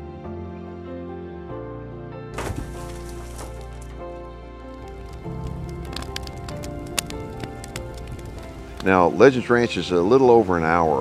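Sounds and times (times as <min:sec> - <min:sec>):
background music: 0:00.0 - 0:11.0
campfire crackling and popping: 0:02.4 - 0:09.7.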